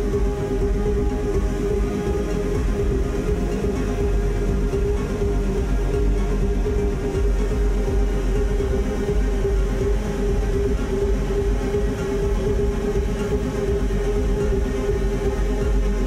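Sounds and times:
electronic noise drone: 0.0 - 16.0
heavy sub-bass: 0.0 - 16.0.

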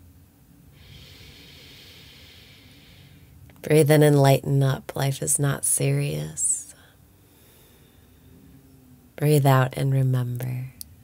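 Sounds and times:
woman breathing through nose: 0.8 - 3.4, 6.9 - 8.4.

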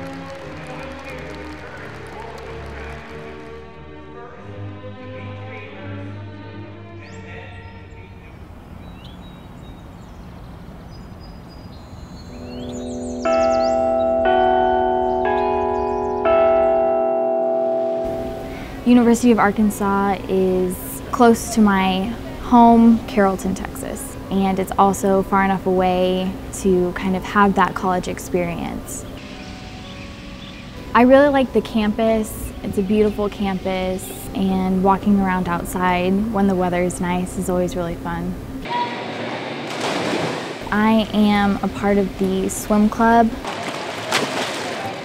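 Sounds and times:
faint outdoor background: 0.0 - 38.9, 40.6 - 43.4
clock tower bells chiming: 12.3 - 19.4
faint held tones: 12.4 - 19.0.

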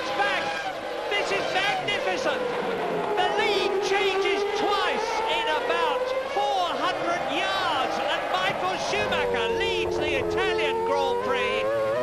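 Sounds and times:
man commentating excitedly: 0.0 - 12.0
racing car engines whining: 0.0 - 12.0.

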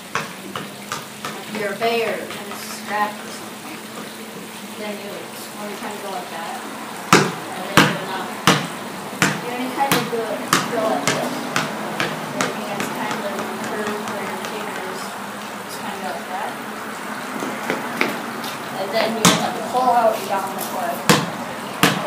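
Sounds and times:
basketball bouncing on concrete: 0.0 - 4.1, 7.1 - 15.1, 17.4 - 22.0.

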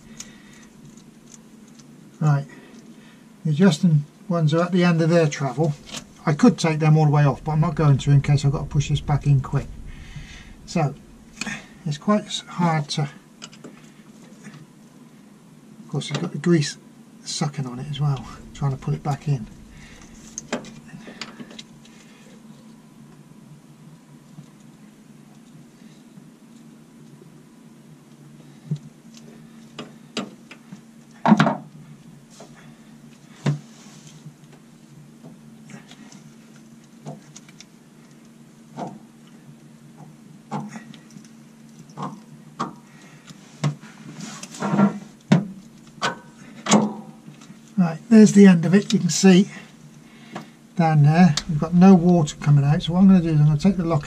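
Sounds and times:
low steady hum: 0.0 - 26.0, 45.5 - 54.0.

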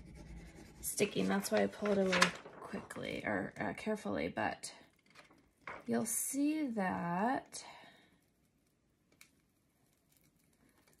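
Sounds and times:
plastic sheet clicking: 1.4 - 2.8, 5.2 - 5.9.

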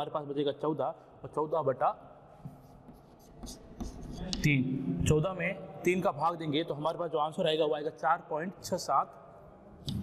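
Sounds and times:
chalk writing on chalkboard: 2.4 - 4.4.

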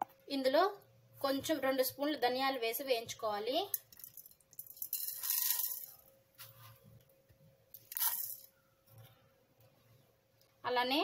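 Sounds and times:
seeds rattling in a steel pan: 3.7 - 6.1, 7.8 - 8.6.

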